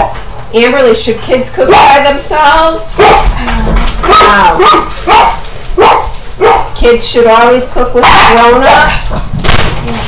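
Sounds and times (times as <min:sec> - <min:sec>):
dog barking: 0:03.0 - 0:03.3, 0:04.1 - 0:06.8.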